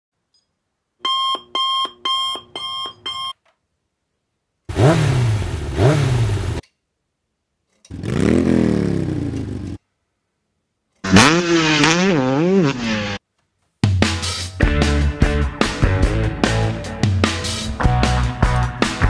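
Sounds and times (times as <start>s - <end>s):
motorcycle engine revving: 4.7s - 6.6s, 7.9s - 9.8s, 11.0s - 13.2s.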